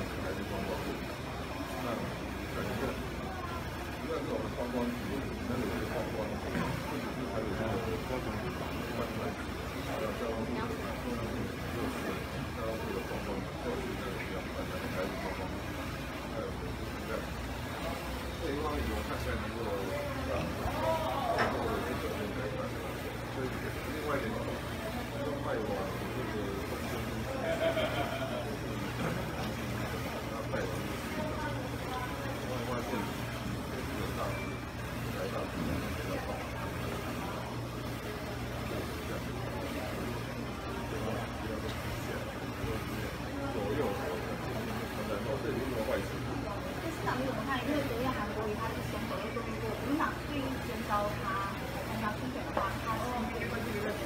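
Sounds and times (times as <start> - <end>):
indistinct crowd talking: 0.0 - 54.0.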